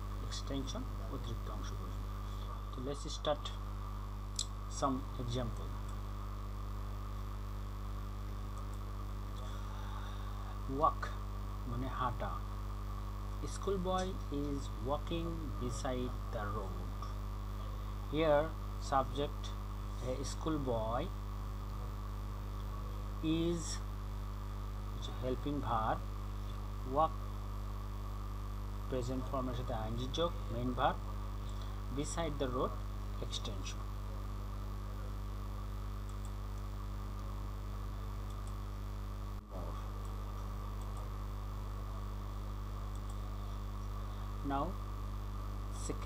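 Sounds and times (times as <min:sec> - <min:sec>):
electrical mains hum: 0:00.0 - 0:46.0.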